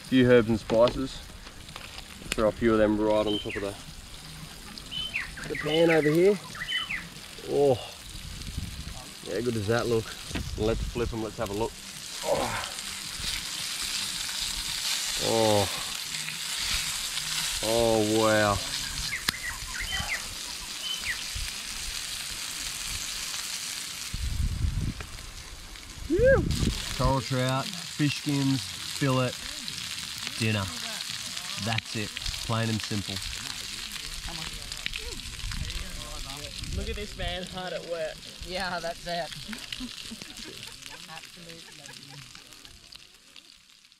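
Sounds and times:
campfire crackling: 0:00.0 - 0:43.9
fish sizzling in hot oil: 0:00.0 - 0:43.9.

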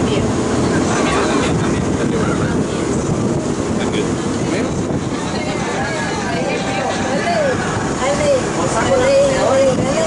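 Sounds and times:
boat engine: 0:00.0 - 0:10.0
wind: 0:00.0 - 0:10.0
women talking and calling out: 0:05.1 - 0:10.0.

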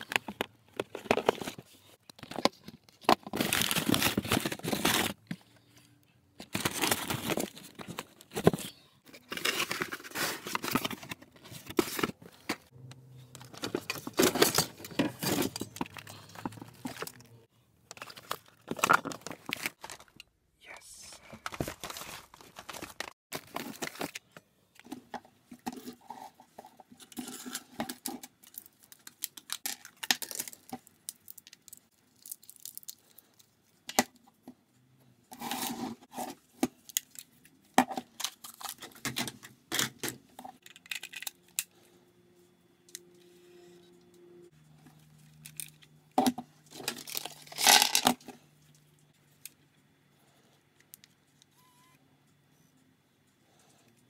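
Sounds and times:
paper and plastic rustling: 0:00.0 - 0:05.8, 0:06.4 - 0:20.2, 0:21.3 - 0:29.4.

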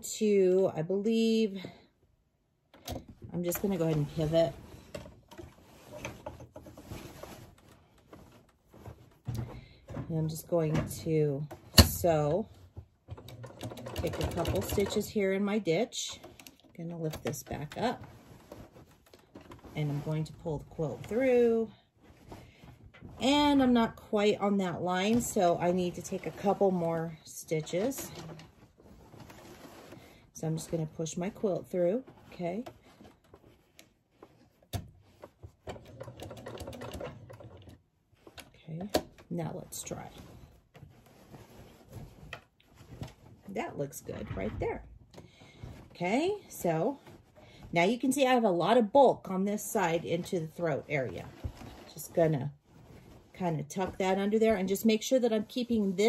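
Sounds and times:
fabric rustling and sliding: 0:03.1 - 0:10.7, 0:17.4 - 0:56.0
sewing machine ticks and rustles: 0:13.0 - 0:15.2, 0:35.6 - 0:38.5.

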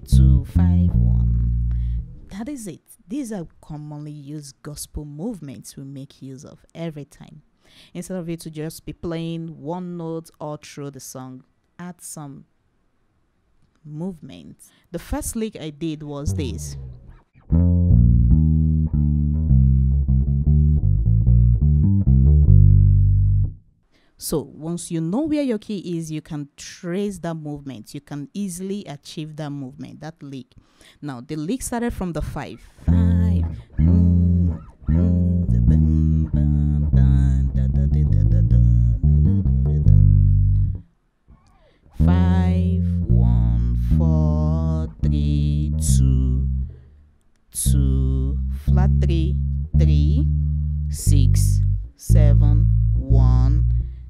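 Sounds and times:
electric bass guitar run: 0:00.0 - 0:02.3, 0:16.3 - 0:23.6, 0:32.9 - 0:40.8, 0:42.0 - 0:46.7, 0:47.6 - 0:54.0.

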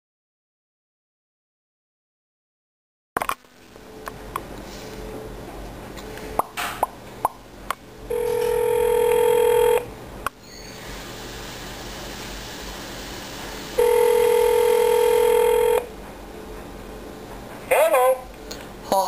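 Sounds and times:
phone line clicks: 0:08.1 - 0:09.8
telephone ringback tone: 0:08.1 - 0:09.9, 0:13.8 - 0:15.9
phone line hiss: 0:08.1 - 0:15.9.

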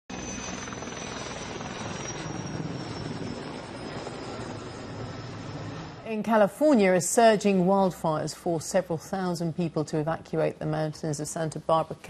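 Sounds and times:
high turbine whine: 0:00.1 - 0:06.1
helicopter flying overhead: 0:00.1 - 0:12.0.

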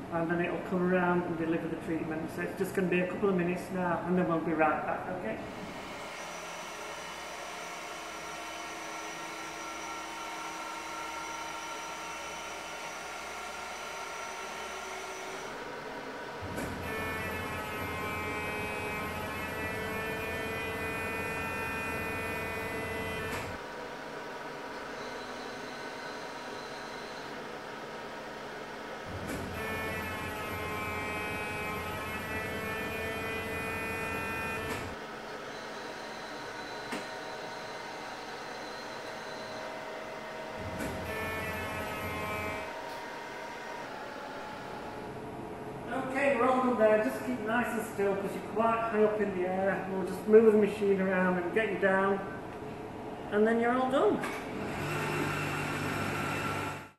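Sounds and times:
deeper machine hum: 0:03.2 - 0:53.3
machine humming with whining tones: 0:04.0 - 0:51.5, 0:54.1 - 0:56.9.

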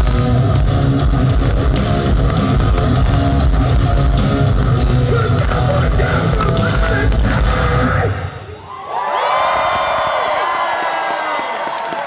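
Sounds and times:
live metal band playing: 0:00.0 - 0:08.4
crowd cheering and screaming: 0:07.3 - 0:12.0.

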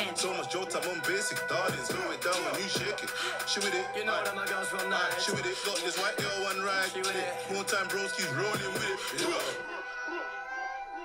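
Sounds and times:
quick hi-hats: 0:00.0 - 0:09.6
man rapping over a beat: 0:00.0 - 0:09.8.

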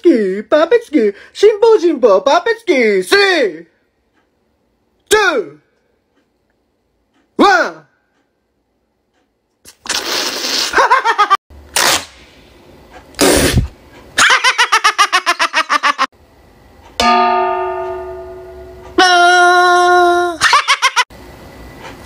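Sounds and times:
rhythmic laughter: 0:14.2 - 0:16.1, 0:20.4 - 0:21.0
metal bowls clanging and ringing: 0:17.0 - 0:19.0.

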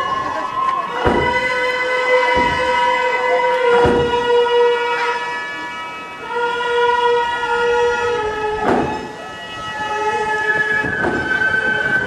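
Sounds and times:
held wind instrument chords: 0:00.0 - 0:12.0.

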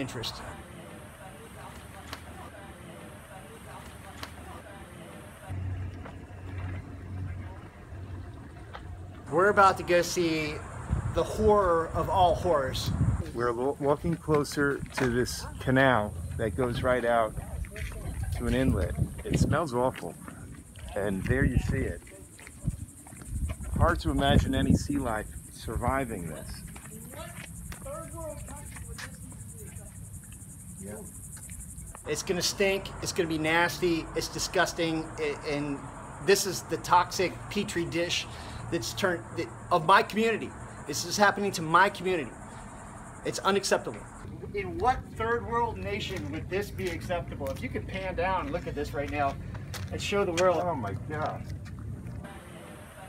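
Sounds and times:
insects trilling: 0:00.0 - 0:13.9, 0:14.5 - 0:50.8
low motor hum: 0:04.7 - 0:11.2
low rumble: 0:05.5 - 0:11.3.

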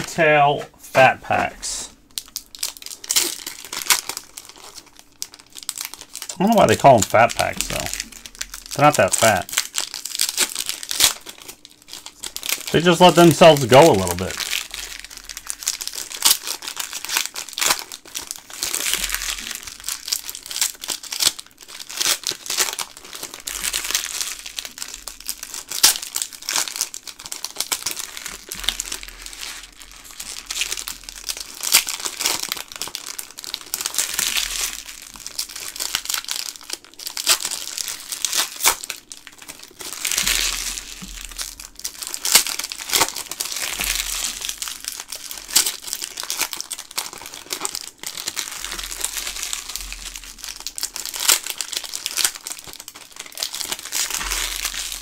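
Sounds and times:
foil wrappers crinkling: 0:01.3 - 0:55.0.

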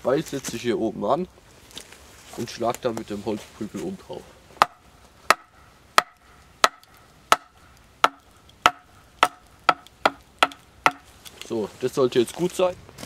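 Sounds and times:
wooden club knocking on hatchet: 0:04.6 - 0:11.1.

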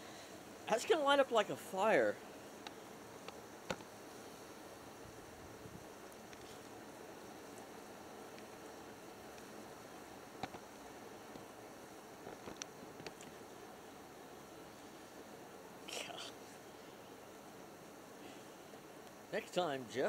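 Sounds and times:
fire crackles: 0:00.0 - 0:20.0
fire hissing: 0:00.0 - 0:20.0.

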